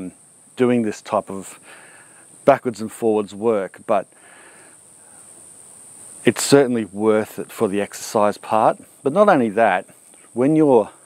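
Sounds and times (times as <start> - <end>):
high-pitched insect chorus: 0.0 - 11.0
soft intake of breath: 1.5 - 2.4, 4.1 - 6.2.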